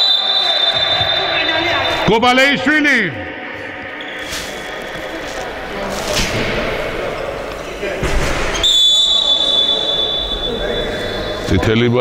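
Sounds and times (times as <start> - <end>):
high-pitched whistle blast: 0.0 - 2.1, 8.6 - 11.5
sports hall noise: 0.0 - 12.0.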